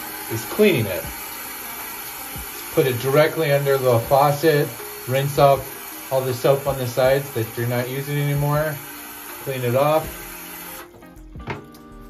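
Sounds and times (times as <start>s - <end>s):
soft background music: 0.0s - 12.0s
tap water running: 0.0s - 12.0s.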